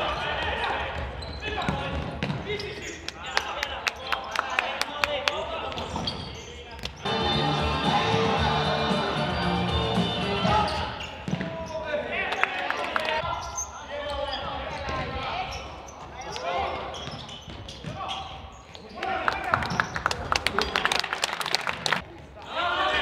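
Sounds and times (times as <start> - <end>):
ball kicks and bounces: 1.0 - 2.5
background music: 7.1 - 10.9.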